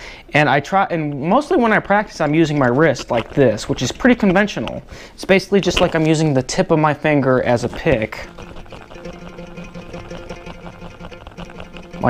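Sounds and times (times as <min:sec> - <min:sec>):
electric guitar fast picking: 0:07.8 - 0:12.0.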